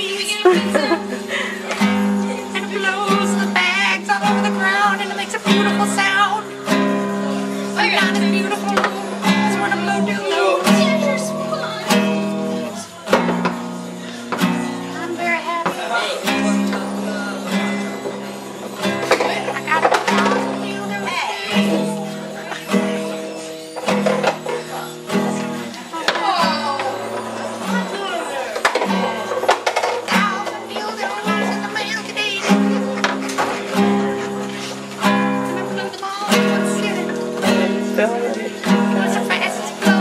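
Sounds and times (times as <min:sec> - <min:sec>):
person singing: 0:00.0 - 0:23.2
acoustic guitar strumming: 0:00.0 - 0:40.0.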